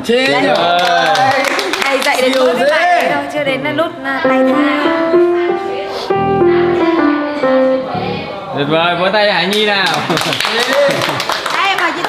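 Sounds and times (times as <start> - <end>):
grand piano notes: 4.2 - 8.9.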